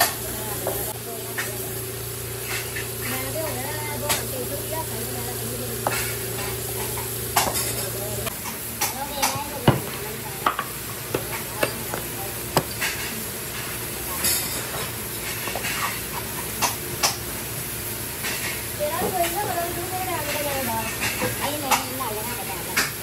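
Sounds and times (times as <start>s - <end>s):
steady hum: 0.0s - 22.7s.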